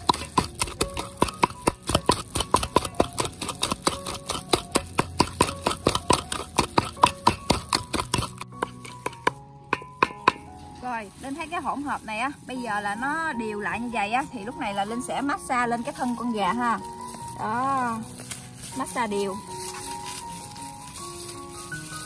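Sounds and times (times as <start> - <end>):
pestle pounding paste in mortar: 0.0 - 10.6.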